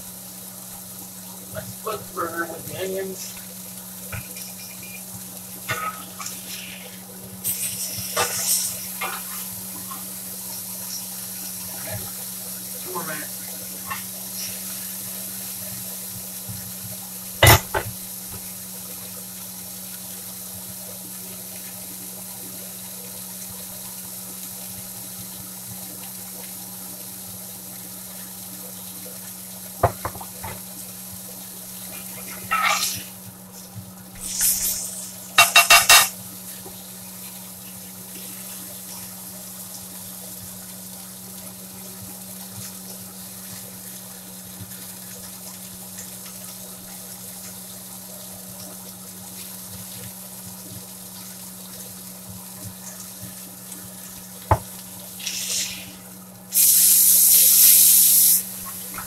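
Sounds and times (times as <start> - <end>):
meat and onions sizzling: 0.0 - 25.7, 29.4 - 39.9, 54.4 - 59.0
metal spatula scraping pan: 32.4 - 33.0, 35.4 - 36.1.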